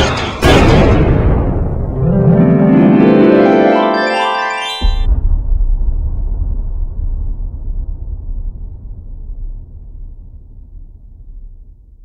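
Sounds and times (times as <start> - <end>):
deep low rumble: 5.0 - 12.0.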